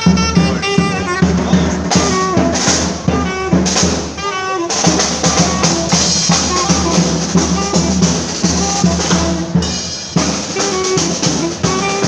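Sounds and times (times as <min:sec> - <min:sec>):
bass drum and snare beat: 0:00.0 - 0:12.0
brass and saxophone melody: 0:00.0 - 0:12.0.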